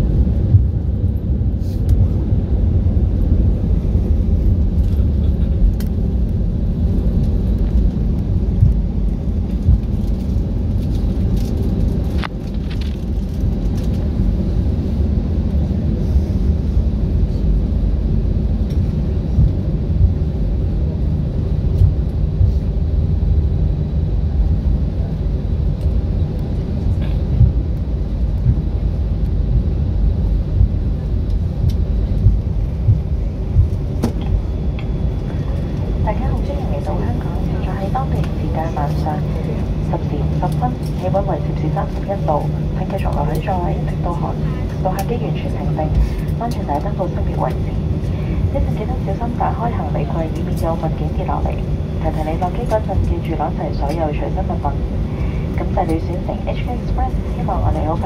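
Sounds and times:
airliner engines rumbling: 0:00.0 - 0:58.0.

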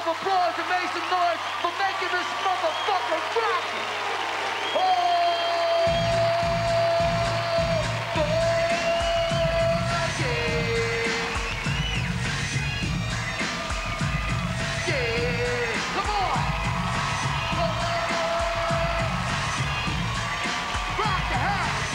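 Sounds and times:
heavy bass beat: 0:05.9 - 0:21.9.

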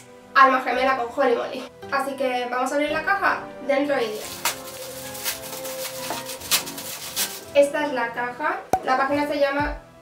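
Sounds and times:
background music: 0:00.0 - 0:10.0
plastic mailer bag rustling: 0:04.1 - 0:07.6.

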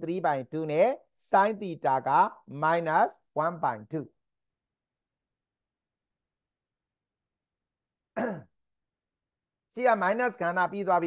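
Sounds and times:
man clearing throat: 0:08.1 - 0:08.6.

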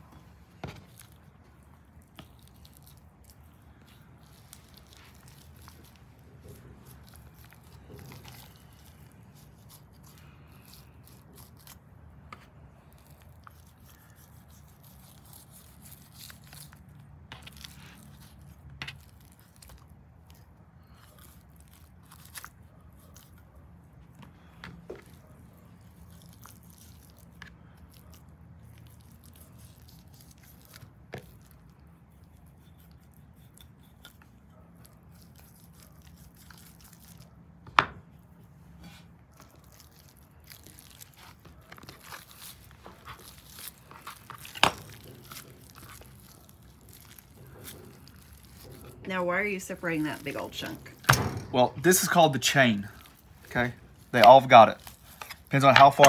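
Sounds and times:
soft tearing of meat: 0:00.1 - 0:49.1, 0:50.2 - 0:56.0.

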